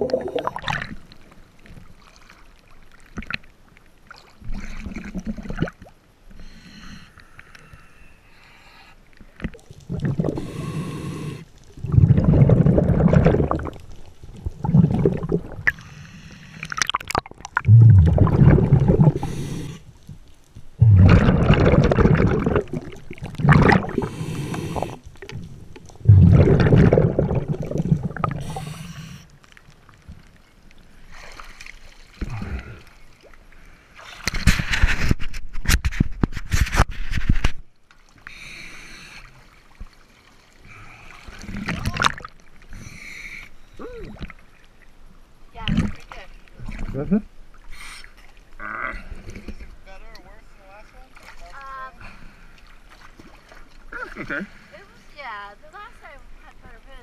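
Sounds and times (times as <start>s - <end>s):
underwater breath bubbles gurgling: 0.0s - 1.0s, 8.6s - 19.9s, 20.8s - 29.3s.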